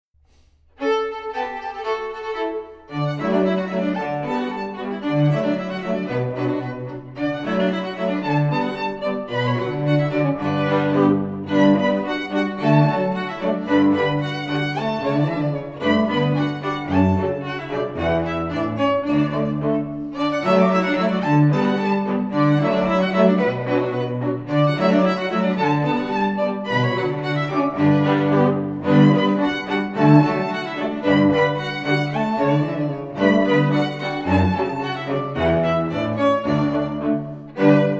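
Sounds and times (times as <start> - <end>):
string quartet playing: 0.3 - 37.9.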